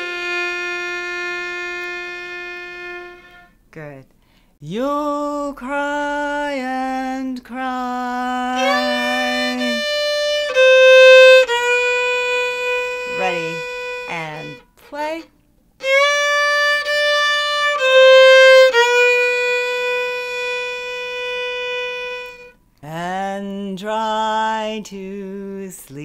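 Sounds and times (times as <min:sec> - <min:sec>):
fiddle bowing: 0:00.0 - 0:03.6, 0:08.6 - 0:14.7, 0:15.8 - 0:22.6.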